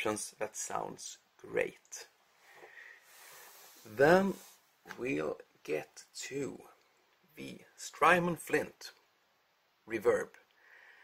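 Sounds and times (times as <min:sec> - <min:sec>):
soft breathing: 0:02.3 - 0:04.7, 0:10.5 - 0:11.0.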